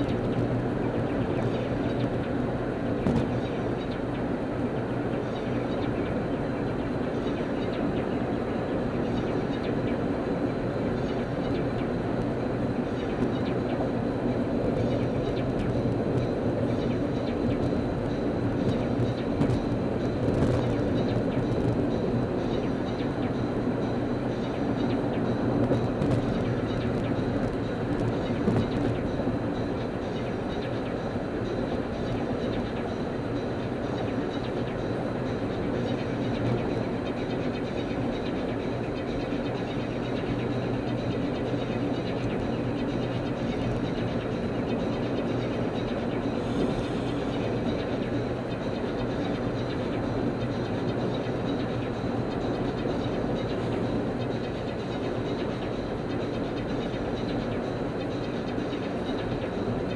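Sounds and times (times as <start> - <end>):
car road and engine noise: 0.0 - 59.9.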